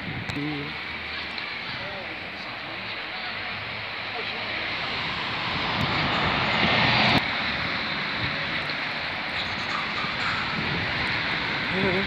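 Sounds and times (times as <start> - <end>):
steady traffic noise: 0.0 - 12.0
vehicle passing close: 3.6 - 12.0.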